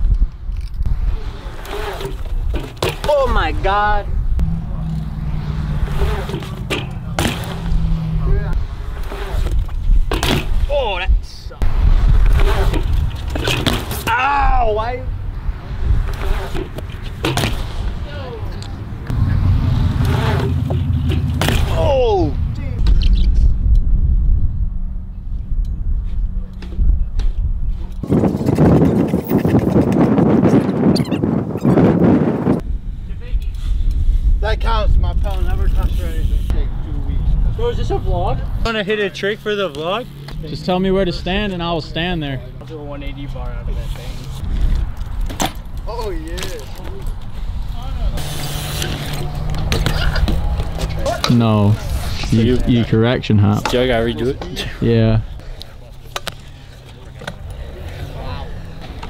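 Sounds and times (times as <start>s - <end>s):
bike tyres rolling on concrete: 0.0s - 23.6s, 32.5s - 59.0s
voices: 2.8s - 9.5s, 13.4s - 23.3s, 45.7s - 59.0s
low rumble: 3.9s - 10.2s, 17.7s - 28.0s
scooter landing clacks: 6.0s - 7.8s.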